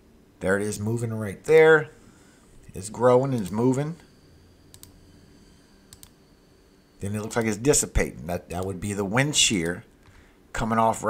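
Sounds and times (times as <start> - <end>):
computer mouse clicks: 4.7 - 5.0, 5.9 - 6.2.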